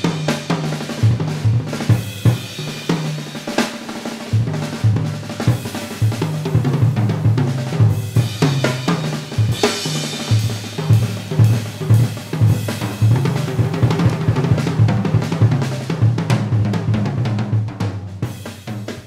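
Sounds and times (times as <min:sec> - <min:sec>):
jazz drum kit playing: 0:00.0 - 0:19.0.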